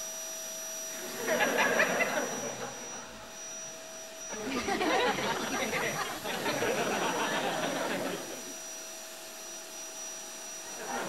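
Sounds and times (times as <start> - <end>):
vacuum cleaner running: 0.0 - 11.0.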